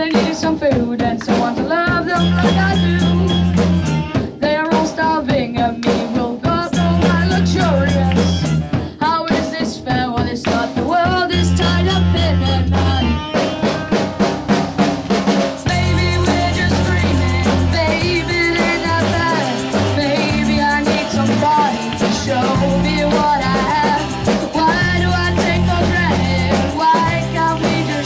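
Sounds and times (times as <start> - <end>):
boy singing lead vocal: 0.0 - 14.5, 15.6 - 28.0
drum kit: 0.0 - 28.0
electric guitar: 1.3 - 4.7, 5.8 - 9.1, 10.5 - 28.0
bass guitar notes: 1.9 - 4.4, 6.6 - 8.8, 11.1 - 28.0.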